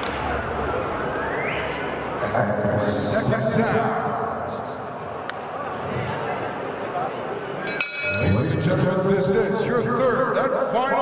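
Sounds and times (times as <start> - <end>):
boxing ring bell ringing: 7.7 - 8.5.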